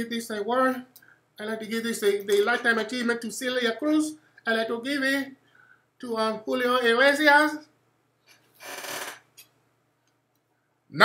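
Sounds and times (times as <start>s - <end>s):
man breathing in: 5.4s - 5.9s.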